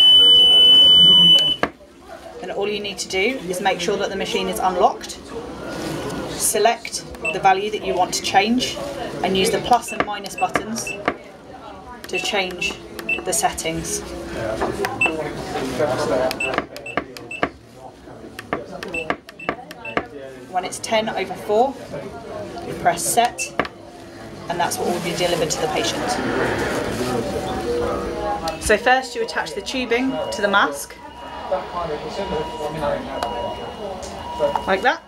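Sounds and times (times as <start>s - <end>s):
high-pitched ventilator beep: 0.0s - 1.6s, 7.2s - 7.5s, 9.6s - 11.1s, 13.1s - 13.5s, 15.0s - 15.2s, 28.5s - 35.0s
keypad beeps with clicks: 0.0s - 1.7s, 9.8s - 11.1s, 12.1s - 13.3s, 15.0s - 15.2s, 16.4s - 17.6s, 18.8s - 20.1s.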